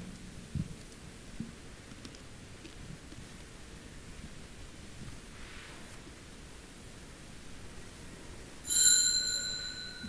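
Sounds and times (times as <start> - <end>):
small bell ringing: 8.6 - 10.0.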